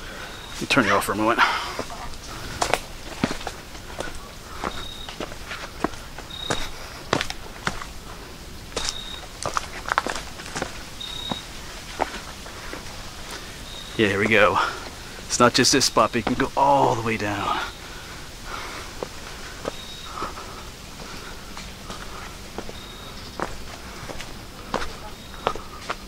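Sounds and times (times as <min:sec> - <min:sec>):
footsteps on rocky trail: 0:00.3 - 0:26.0.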